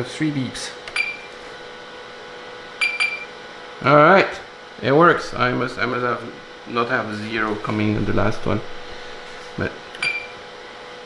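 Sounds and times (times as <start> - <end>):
short high computer beeps: 2.8 - 3.3, 10.0 - 10.4.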